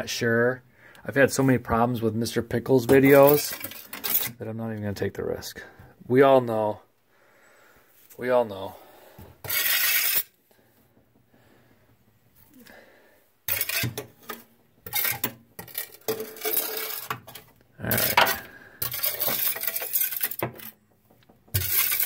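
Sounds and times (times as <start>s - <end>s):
metal shovel scraping glass: 3.0s - 4.4s, 9.4s - 10.4s, 13.5s - 20.8s, 21.5s - 22.0s.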